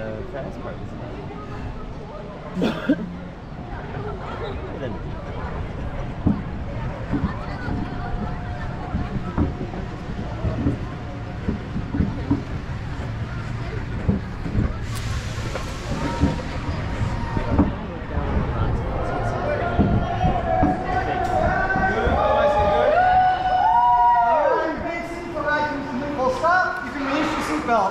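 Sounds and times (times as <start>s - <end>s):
roller coaster train rumbling: 0.0s - 27.9s
hiss: 14.8s - 17.3s.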